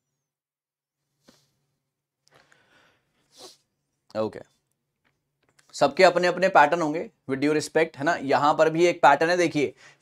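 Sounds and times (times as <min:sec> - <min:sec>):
man sniffing: 0:02.4 - 0:03.8
man speaking: 0:05.7 - 0:09.8.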